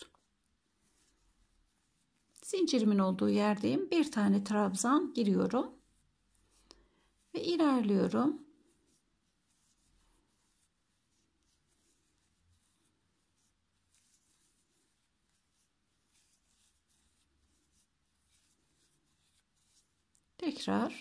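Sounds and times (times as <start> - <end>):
crochet hook rustling yarn: 0.0 - 21.0.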